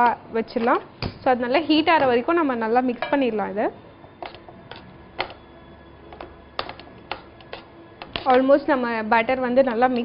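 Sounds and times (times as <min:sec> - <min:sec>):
woman's voice: 0:00.0 - 0:03.7, 0:08.2 - 0:10.0.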